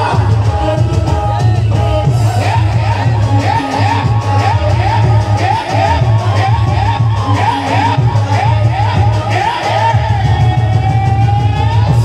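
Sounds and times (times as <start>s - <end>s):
harmonium: 0.0s - 12.0s
pulsing drum beat: 0.0s - 12.0s.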